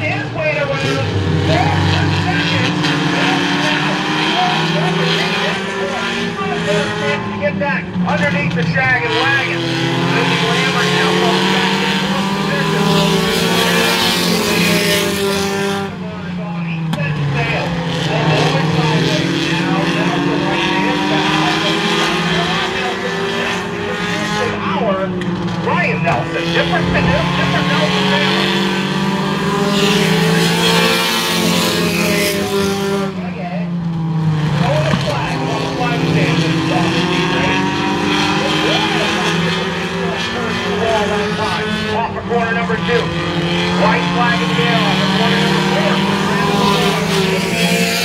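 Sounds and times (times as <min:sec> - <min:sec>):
race car engines droning: 0:00.0 - 0:48.0.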